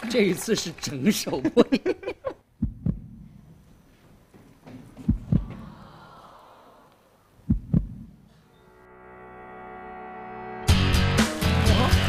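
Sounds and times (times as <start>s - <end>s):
heartbeat double thumps: 2.6s - 3.3s, 5.1s - 5.7s, 7.5s - 8.2s.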